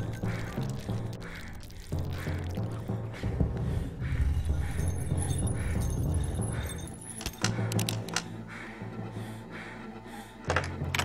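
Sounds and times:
low steady drone: 0.0 - 11.0
metallic clinks and jangles: 4.6 - 7.5.

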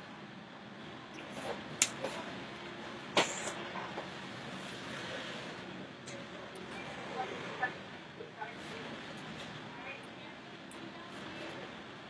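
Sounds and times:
steady background noise: 0.0 - 12.0.

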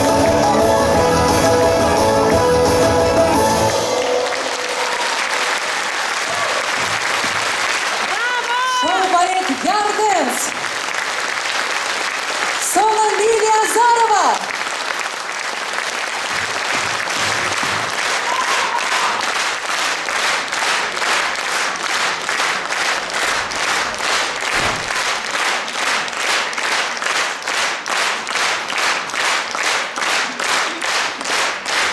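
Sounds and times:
audience applause: 0.0 - 31.9
rhythmic clapping in unison: 0.0 - 31.9.

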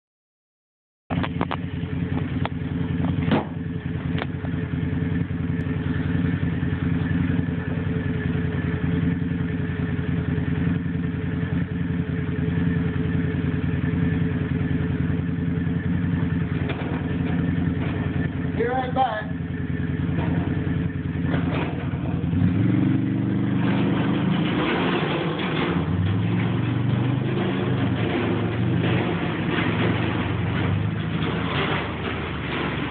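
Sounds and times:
sharp knocks: 3.0 - 3.6
small engine running and revving: 19.9 - 32.9.

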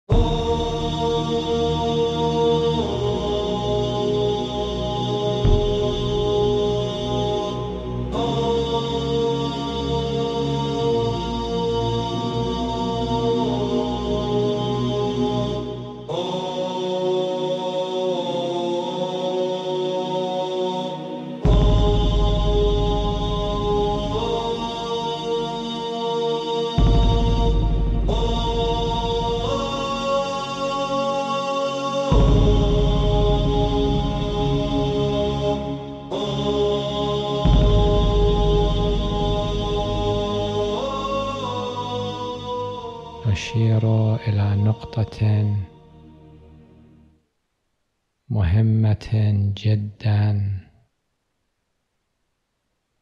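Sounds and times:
chant-like drone music: 0.1 - 47.1.

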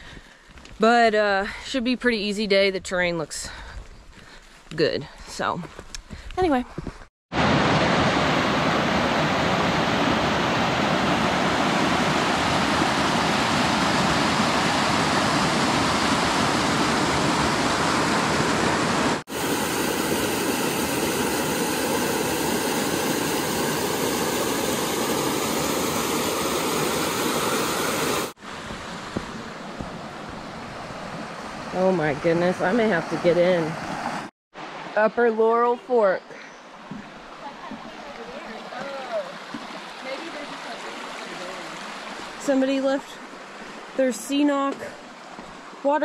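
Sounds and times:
creek rushing over rocks: 7.4 - 35.0, 36.7 - 45.9.

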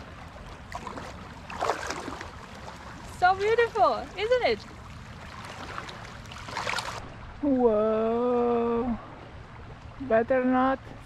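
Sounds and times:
seawater lapping over rocks: 0.0 - 7.2
water splashing: 0.0 - 10.3.

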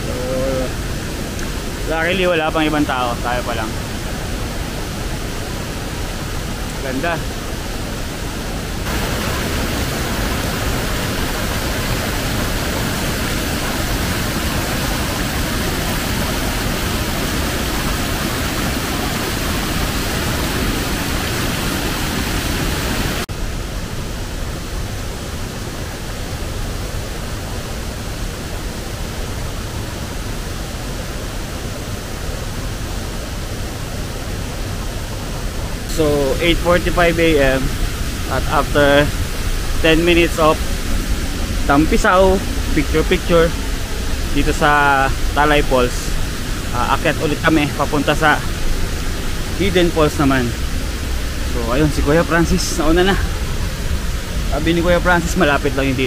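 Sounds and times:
waterfall roaring: 0.0 - 56.0.

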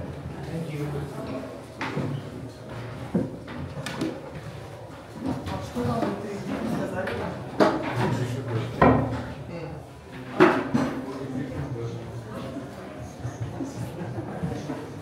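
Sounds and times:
people talking: 5.4 - 8.8.

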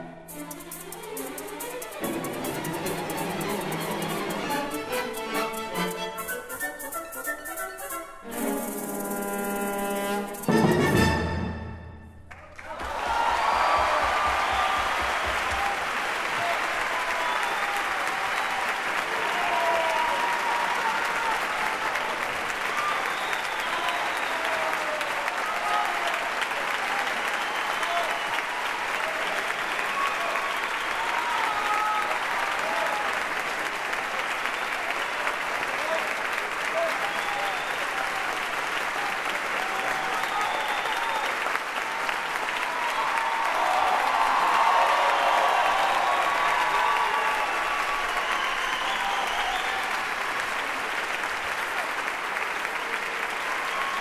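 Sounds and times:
audience applauding: 0.0 - 7.4, 12.3 - 54.0.

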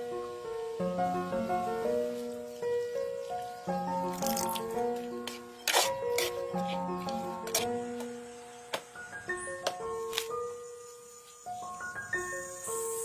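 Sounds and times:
instrumental background music: 0.0 - 13.0.

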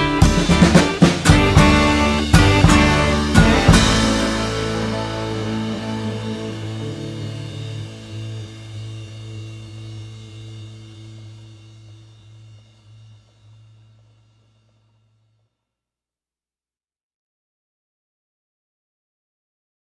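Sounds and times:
blues-rock final chord ringing: 0.0 - 13.0.

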